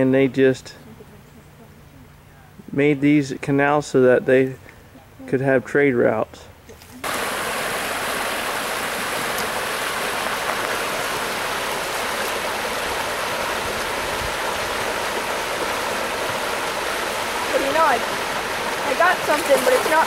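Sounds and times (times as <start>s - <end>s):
creek water rushing: 7.0s - 20.0s.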